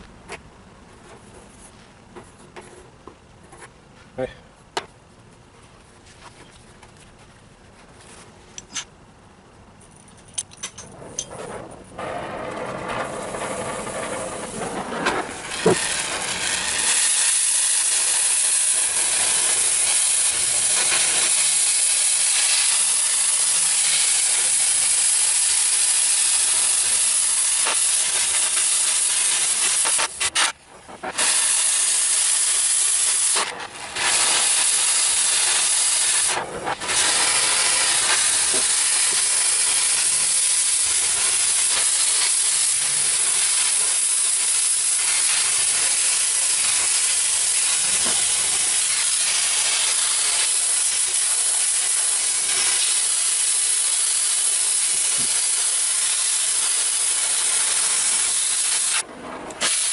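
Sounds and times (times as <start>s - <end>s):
cutting torch hissing: 12.0s - 59.9s.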